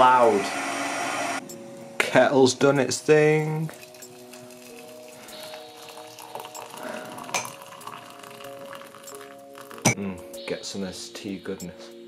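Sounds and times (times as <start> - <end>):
background music: 0.0 - 12.0
water pouring into mug: 3.5 - 10.0
spoon clinking mug: 3.7 - 10.0.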